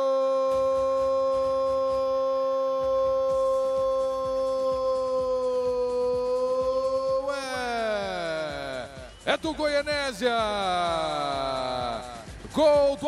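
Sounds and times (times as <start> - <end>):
commentator's long goal cry: 0.0 - 9.0.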